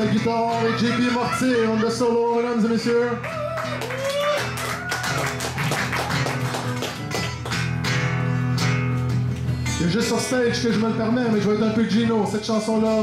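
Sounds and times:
acoustic guitar accompaniment: 0.0 - 13.0.

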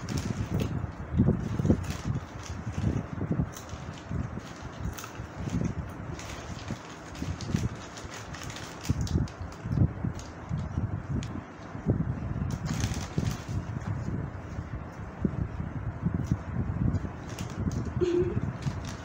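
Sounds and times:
plastic snack packets crinkling: 1.4 - 10.8.

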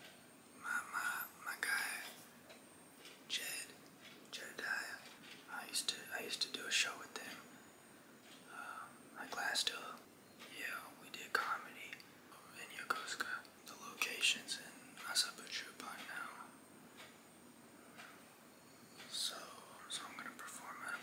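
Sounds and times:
man whispering: 0.6 - 2.2, 3.3 - 7.5, 8.5 - 16.5, 19.0 - 21.0.

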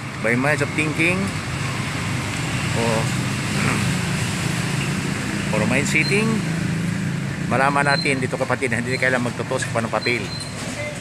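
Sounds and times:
low rumble of traffic: 0.0 - 11.0.

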